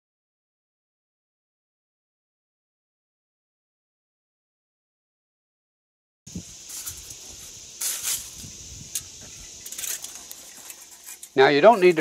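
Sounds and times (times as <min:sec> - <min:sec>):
steady high hiss: 0:06.3 - 0:12.0
aluminum foil crinkling: 0:06.5 - 0:12.0.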